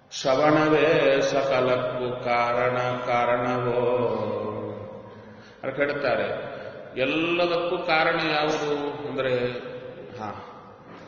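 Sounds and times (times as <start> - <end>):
man chanting: 0.0 - 10.6.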